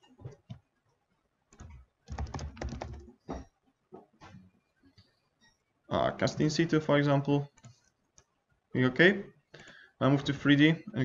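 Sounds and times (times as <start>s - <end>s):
computer keyboard typing: 1.5s - 3.2s.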